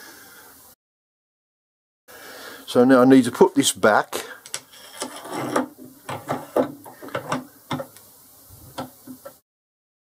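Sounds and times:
metal clicks and knocks: 4.5s - 7.9s.

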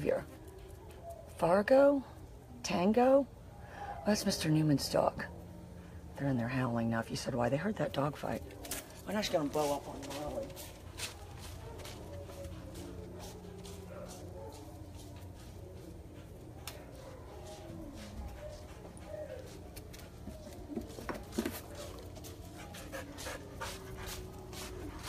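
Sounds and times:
dogs howling and whining: 0.0s - 1.4s, 10.3s - 25.0s.

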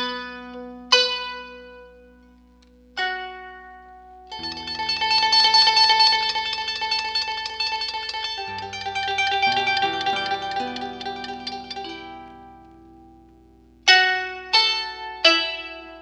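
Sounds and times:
harp duo playing: 4.4s - 12.6s.

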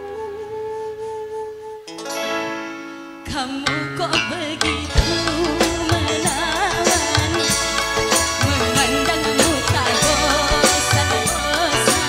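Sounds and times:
woman singing: 3.2s - 12.0s.

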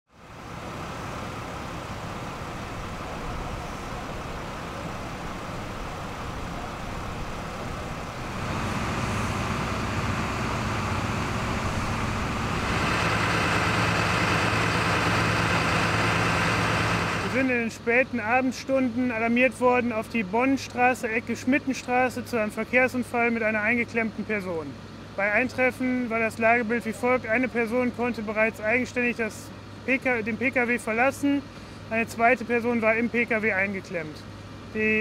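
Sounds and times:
vehicle engines idling: 0.2s - 35.0s.

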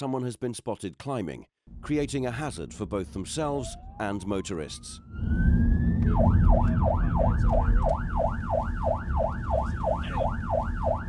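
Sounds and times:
car engine and road noise: 1.7s - 11.0s
police siren wailing and yelping: 3.4s - 11.0s.

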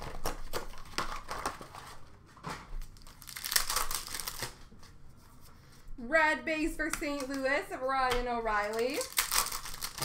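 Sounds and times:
wrapper tearing and crinkling: 2.8s - 4.7s, 8.6s - 10.0s.

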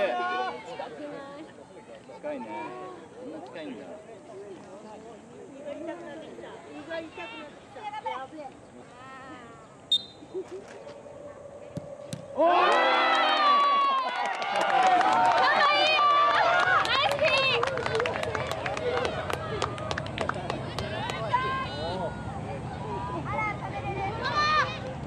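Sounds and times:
high whistle blast: 9.9s - 10.2s
ball being kicked: 11.7s - 12.3s
clapping: 12.7s - 21.2s
children shouting and cheering: 21.2s - 25.0s.

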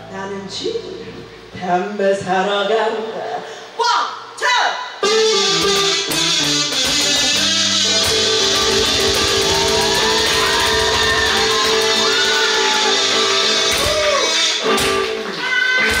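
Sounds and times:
harmonica: 5.0s - 16.0s
cajon beat: 5.2s - 16.0s
strummed acoustic guitar: 5.6s - 16.0s.

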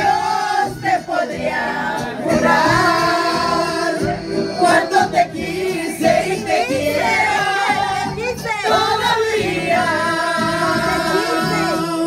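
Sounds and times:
music: 0.0s - 12.0s
women singing together: 0.0s - 12.0s.

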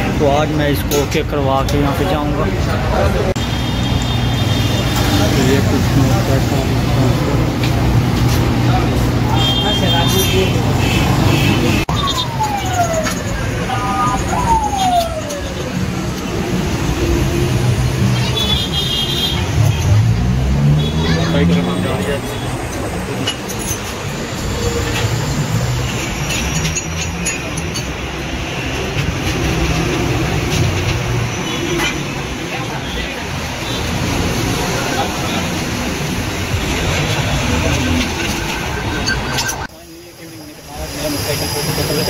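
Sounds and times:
road traffic rumble: 0.0s - 42.0s.

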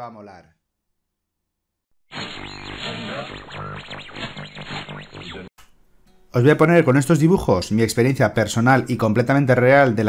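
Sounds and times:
processed voice-like sound effect: 2.2s - 5.5s.

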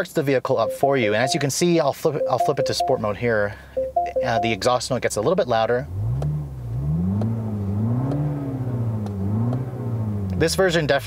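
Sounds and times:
car engine revving: 5.6s - 11.0s.

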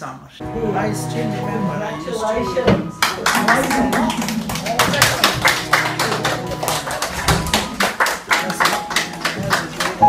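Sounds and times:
people clapping: 3.0s - 10.0s.

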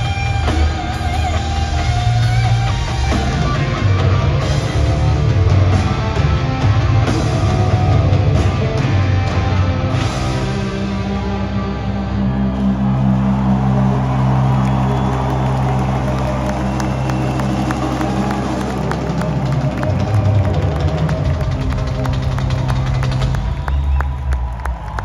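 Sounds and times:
crowd cheering: 0.0s - 25.0s.

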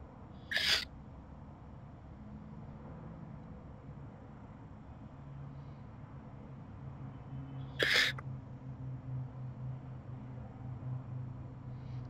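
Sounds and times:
faint background noise: 0.0s - 12.0s
breathy sniff: 0.5s - 0.8s, 7.8s - 8.2s.

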